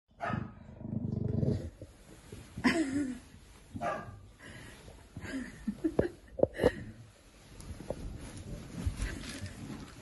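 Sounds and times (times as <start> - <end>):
dog growling: 0.8 - 1.8.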